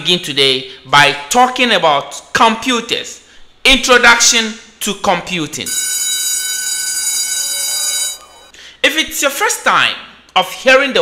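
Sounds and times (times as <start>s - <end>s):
high electronic tone: 5.7s - 8.5s.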